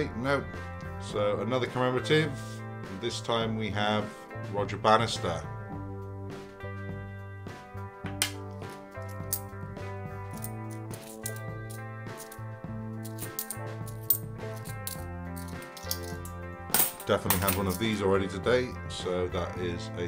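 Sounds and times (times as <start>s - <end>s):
background music: 0.0s - 20.0s
coins clinking in hand: 8.3s - 9.5s, 10.2s - 18.0s.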